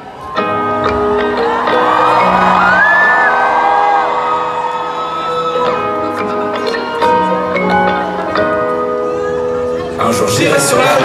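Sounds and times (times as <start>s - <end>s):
crowd whooping and screaming: 0.0s - 7.2s
live concert music: 0.0s - 11.0s.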